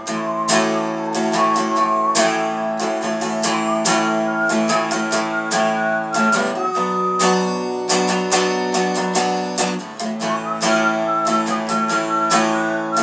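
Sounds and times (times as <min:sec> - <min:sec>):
archtop guitar strumming chords: 0:00.0 - 0:13.0
thin wavering high tone: 0:00.0 - 0:13.0.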